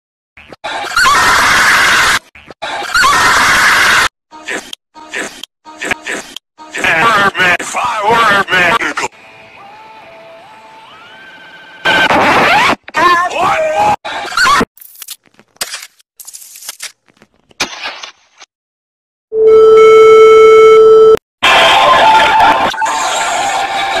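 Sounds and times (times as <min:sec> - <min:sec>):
distorted squealing noise: 0:11.8 - 0:12.8.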